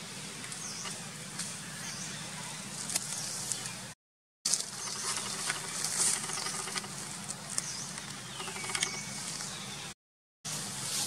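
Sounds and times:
dry leaves rustling and crackling: 4.5 - 7.9.

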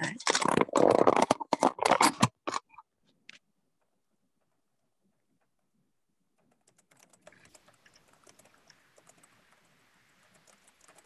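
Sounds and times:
faint rapid clicks: 6.4 - 11.0.

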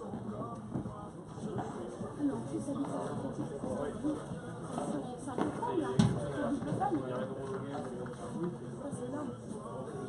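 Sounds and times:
spectators chatting: 0.0 - 10.0.

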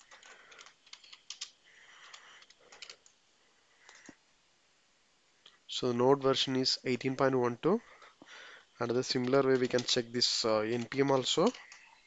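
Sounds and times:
faint typing on computer keyboard: 0.0 - 4.2, 8.9 - 12.0.

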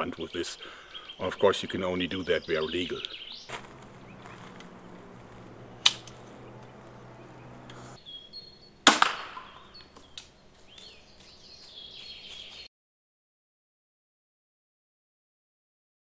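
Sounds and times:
crossbow string cracking: 3.5 - 6.8.

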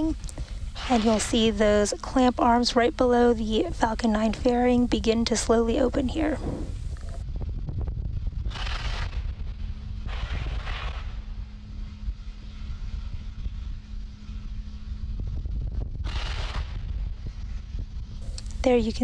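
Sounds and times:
faint hum: 0.0 - 19.0
low rumble: 0.0 - 19.0.

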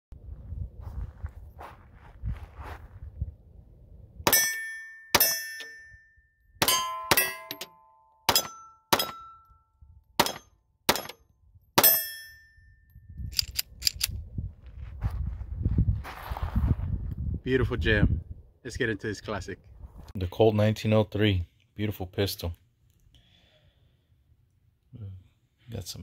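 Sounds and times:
steel targets ringing: 4.3 - 9.6, 11.8 - 12.9
pistol shots: 8.3 - 9.3, 10.2 - 11.2.

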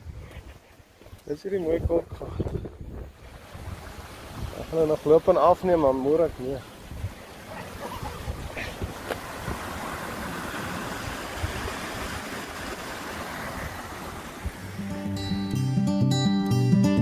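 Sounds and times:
water rushing over rocks: 3.1 - 15.0.

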